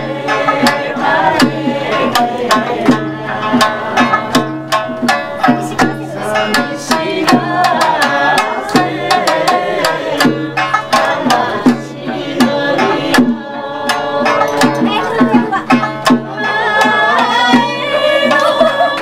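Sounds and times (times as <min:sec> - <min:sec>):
plucked lutes: 0:00.0 - 0:19.0
woman singing folk song: 0:10.8 - 0:19.0.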